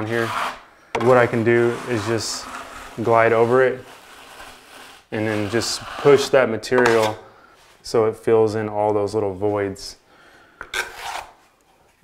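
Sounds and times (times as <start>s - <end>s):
drywall knife scraping wall: 0.0s - 7.3s, 10.7s - 11.4s.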